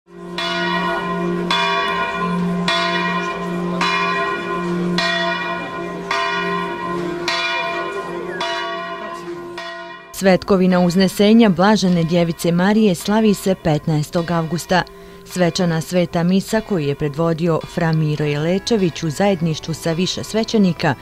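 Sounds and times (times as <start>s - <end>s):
church bell ringing: 0.1s - 21.0s.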